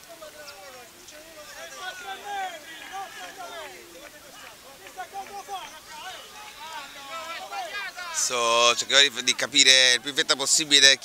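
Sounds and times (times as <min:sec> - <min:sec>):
voices calling and talking: 0:00.0 - 0:11.0.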